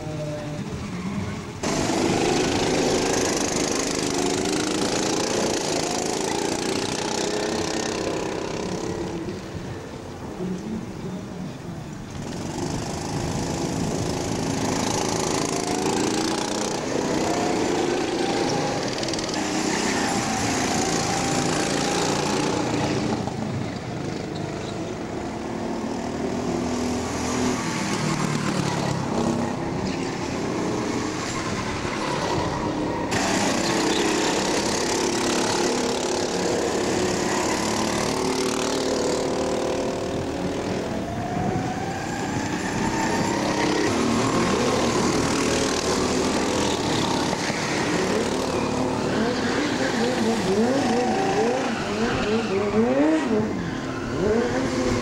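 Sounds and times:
go-kart engines racing: 0.0 - 55.0.

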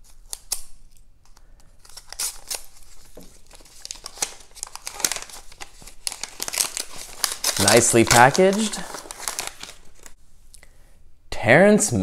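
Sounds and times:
wrapping crinkling and tearing: 1.7 - 10.2.

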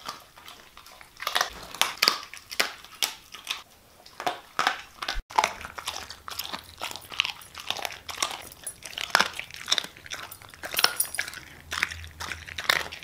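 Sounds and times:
dog chewing and crunching: 0.0 - 13.0.

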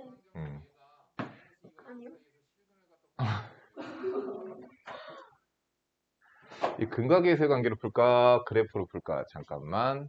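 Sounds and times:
person clearing throat: 3.2 - 4.0.

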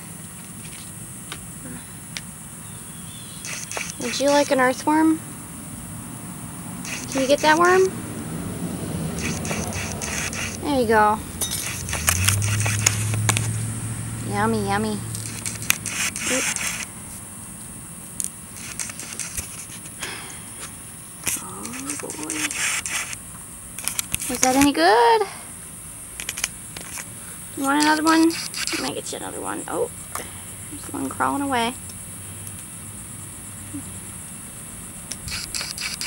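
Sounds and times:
crickets chirping: 0.0 - 36.0
outdoor background hiss: 0.0 - 36.0
short clicks and rustles: 3.4 - 4.5, 11.5 - 13.5, 15.1 - 16.9, 18.2 - 20.0, 23.8 - 24.7, 26.2 - 28.9, 35.1 - 36.0.

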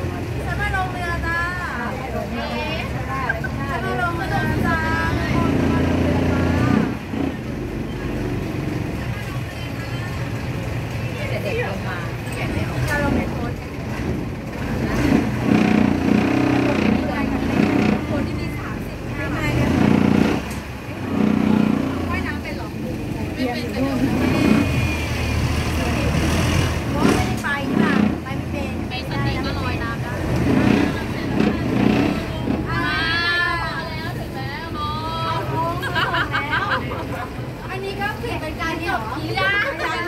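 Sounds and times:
people talking: 0.0 - 13.8, 14.5 - 40.0
boat engine running: 0.0 - 33.2.

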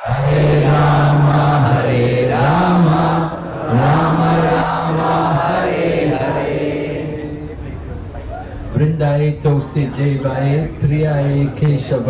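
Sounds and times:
man chanting into a microphone: 0.0 - 7.8, 8.8 - 12.0.

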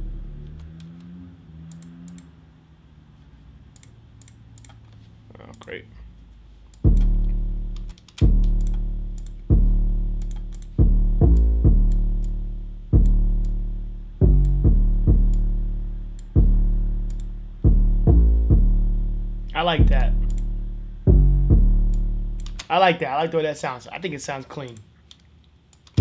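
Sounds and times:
distorted bass line: 0.0 - 0.6, 6.8 - 22.6.

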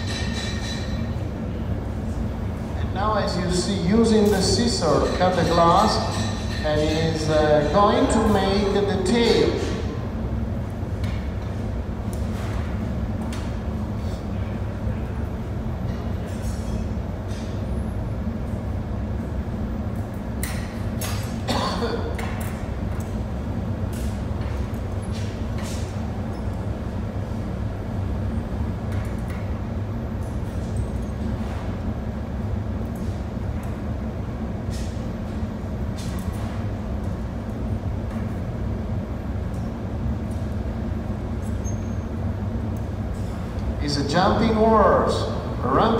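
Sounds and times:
furnace roaring: 0.0 - 45.9.

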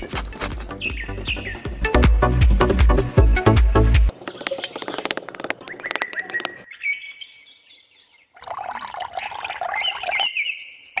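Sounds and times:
birds chirping: 0.0 - 11.0.

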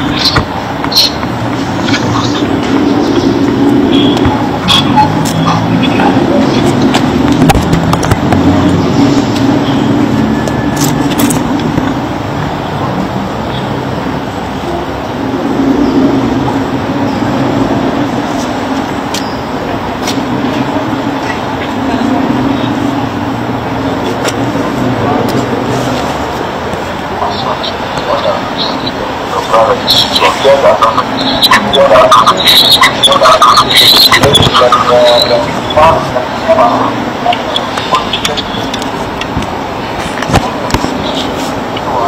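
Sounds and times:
low hum of street traffic: 0.0 - 42.0
people talking: 0.0 - 42.0.

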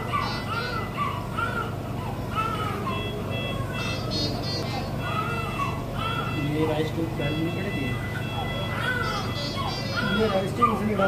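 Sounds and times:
equipment hum with high tone: 0.0 - 11.0.

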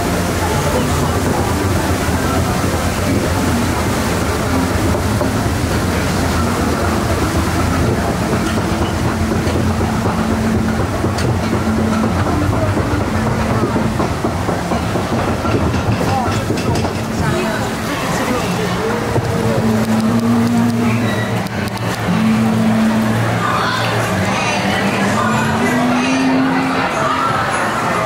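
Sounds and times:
conveyor lift rumble and clatter: 0.0 - 28.0.

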